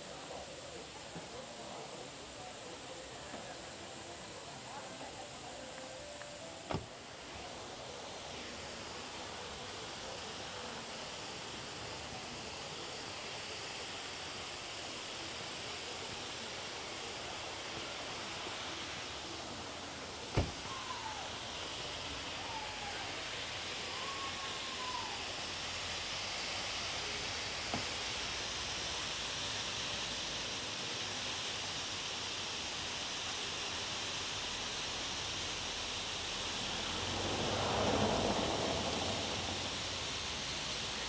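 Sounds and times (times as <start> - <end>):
steady rushing hiss: 0.0 - 41.0.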